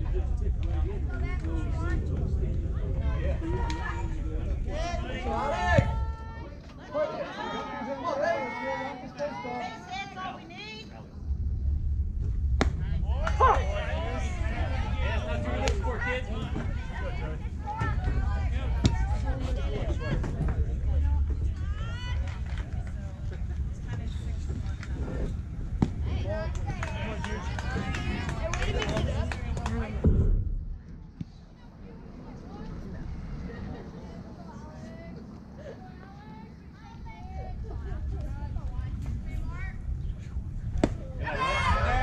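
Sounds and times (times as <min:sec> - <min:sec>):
wind rumble on microphone: 0:00.0 - 0:06.6, 0:11.0 - 0:42.0
players and spectators calling out: 0:03.4 - 0:11.0, 0:40.9 - 0:42.0
low thump: 0:11.4 - 0:13.4, 0:30.0 - 0:31.3
baseball hitting catcher's mitt: 0:40.8 - 0:41.1.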